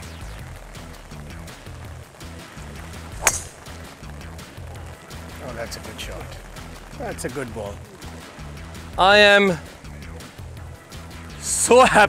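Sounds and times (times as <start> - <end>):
background music: 0.0 - 12.0
golf ball struck crack: 3.0 - 4.2.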